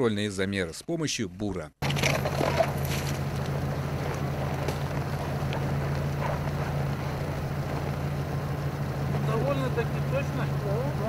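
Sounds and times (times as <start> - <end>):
ice scraping and crunching: 1.8 - 5.2
vehicle engine idling: 1.8 - 11.0.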